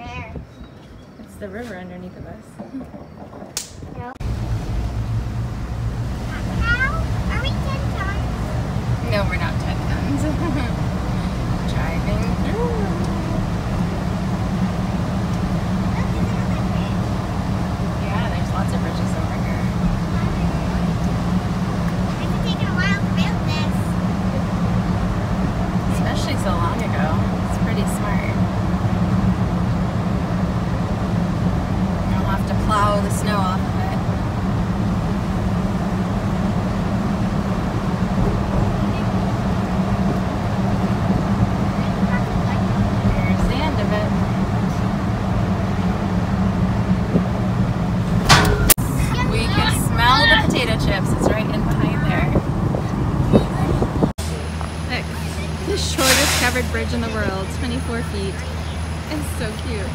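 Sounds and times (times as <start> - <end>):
people talking: 0.0 - 0.5, 1.2 - 4.3, 6.2 - 14.2, 15.3 - 17.2, 17.8 - 21.1, 21.9 - 24.8, 25.8 - 28.5, 32.0 - 34.1, 38.5 - 39.3, 41.6 - 44.9, 48.3 - 59.9
car engine and tyre rumble: 0.0 - 59.9.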